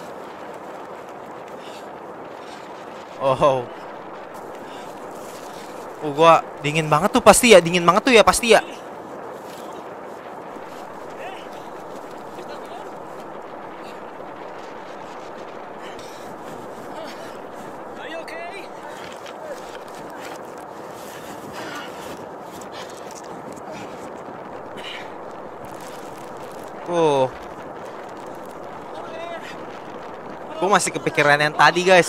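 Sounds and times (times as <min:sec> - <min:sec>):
steady rushing noise: 0:00.0 - 0:32.0.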